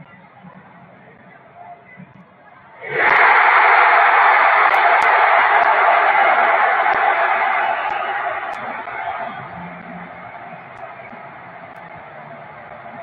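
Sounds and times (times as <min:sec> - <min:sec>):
stadium crowd shouting: 0:02.8 - 0:13.0.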